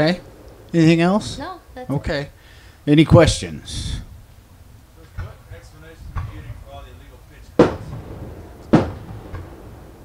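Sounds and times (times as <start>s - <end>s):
sharp thumps: 5.1s - 6.6s, 7.5s - 9.8s.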